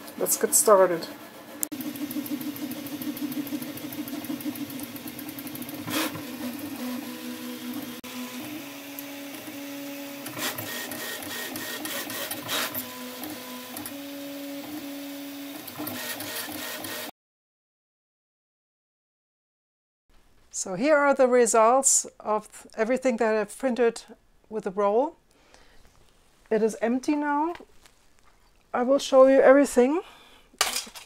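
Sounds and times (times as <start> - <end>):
stepper motors humming: 0.0 - 14.8.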